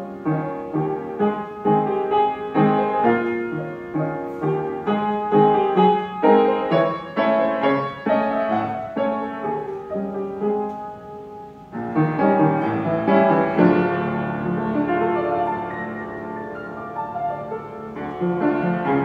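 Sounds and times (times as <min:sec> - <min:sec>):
acoustic piano playing: 0:00.0 - 0:19.0.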